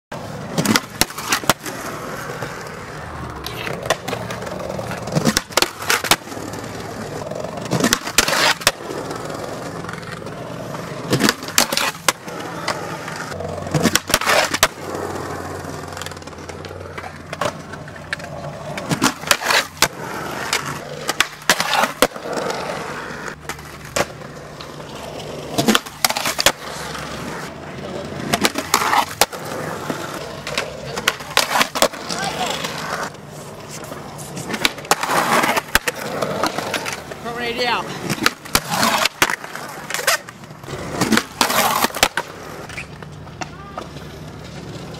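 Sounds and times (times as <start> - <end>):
skateboard wheels rolling on concrete: 0.1 - 44.9
skateboard clacks: 0.2 - 44.9.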